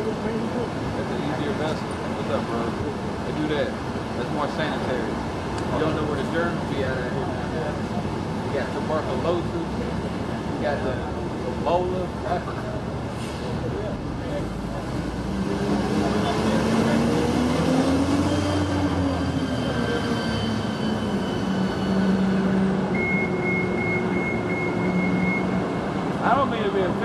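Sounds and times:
bus engine passing: 0.0 - 27.0
steady traffic noise: 0.0 - 27.0
rapid high beeps: 23.0 - 25.6.

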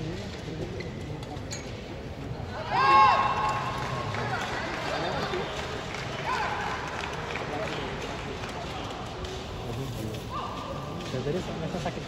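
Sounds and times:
spectators murmuring and calling out: 0.0 - 12.0.

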